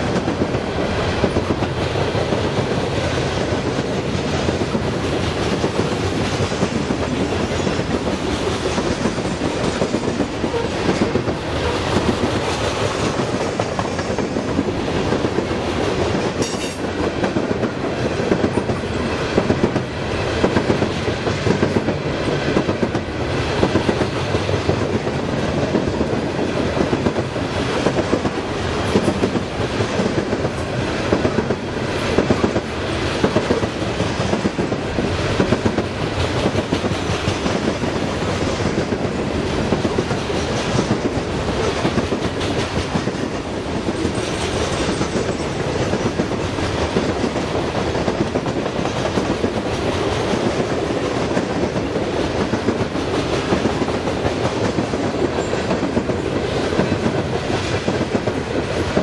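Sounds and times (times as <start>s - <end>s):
train wheels rumbling on rail: 0.0s - 59.0s
wheels clacking over rail joints: 0.0s - 59.0s.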